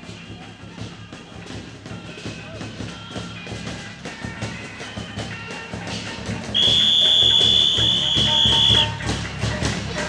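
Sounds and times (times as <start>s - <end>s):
procession drumming: 0.0s - 10.0s
shrill whistle held: 6.6s - 9.0s.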